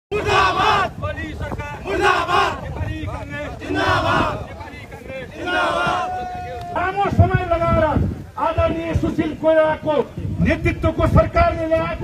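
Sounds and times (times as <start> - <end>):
crowd of men shouting in unison: 0.1 - 1.1, 1.8 - 4.5, 5.2 - 7.2.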